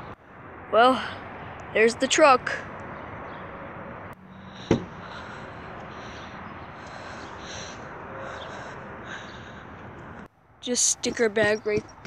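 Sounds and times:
outdoor background noise: 0.0 - 12.0
sharp knock: 4.7 - 4.9.

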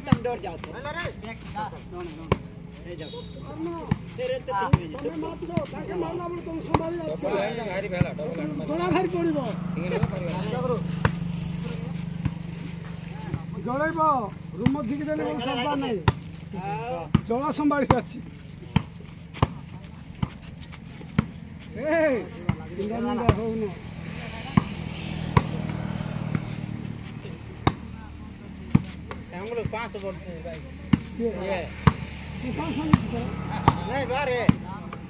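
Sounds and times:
hand slapping volleyball: 0.0 - 1.3, 2.0 - 2.7, 3.8 - 7.0, 10.9 - 11.3, 17.0 - 20.4, 24.5 - 26.6, 27.2 - 28.0, 28.6 - 30.0, 32.9 - 35.0
players' voices: 0.0 - 35.0.

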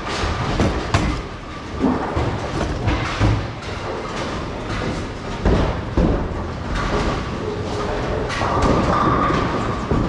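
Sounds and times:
bowling balls rolling: 0.0 - 10.0.

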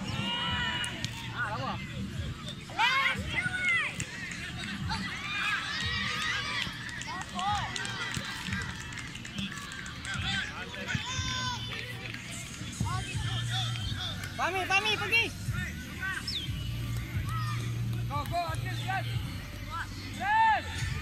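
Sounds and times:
people shouting and calling: 0.0 - 21.0.

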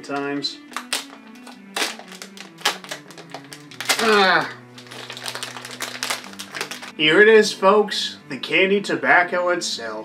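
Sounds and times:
background music with low held notes: 0.0 - 10.0
plastic packaging crinkling: 0.7 - 7.0.

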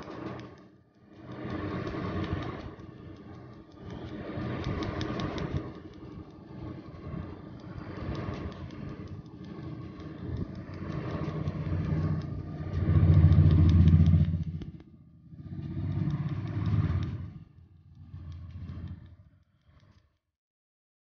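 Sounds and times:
low engine rumble: 0.0 - 19.6
rapid laser clicks: 0.0 - 20.2.

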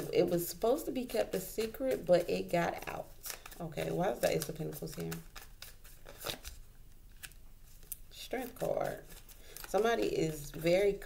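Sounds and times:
cards snapping and rustling: 2.7 - 10.7.

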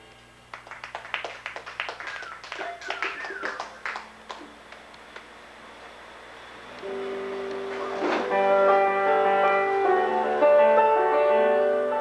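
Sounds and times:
audience clapping: 0.5 - 5.3
voices calling out: 2.0 - 4.0.

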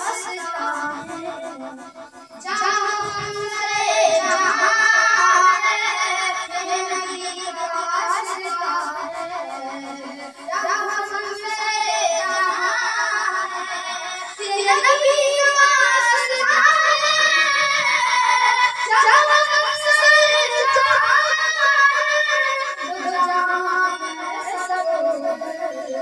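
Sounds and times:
boy singing devotional song: 0.0 - 26.0.

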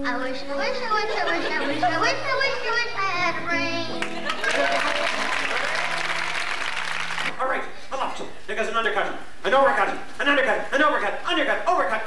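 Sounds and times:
background music low notes: 0.0 - 6.3
audience applauding: 4.0 - 7.3.

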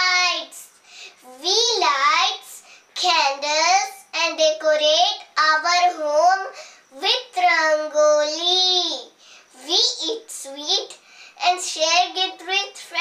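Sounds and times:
girl reciting in sing-song voice: 0.0 - 13.0.

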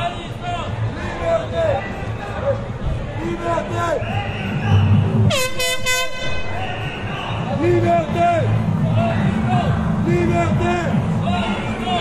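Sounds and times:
crowd voices: 0.0 - 12.0
air horn blast: 5.3 - 6.6.

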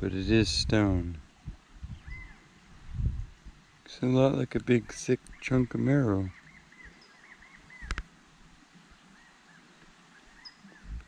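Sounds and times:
bird chirping: 1.8 - 2.6, 5.0 - 8.0, 8.9 - 11.0.

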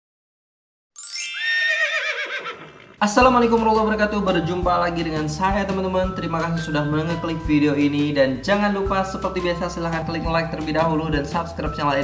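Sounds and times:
horse whinny: 1.4 - 3.0.

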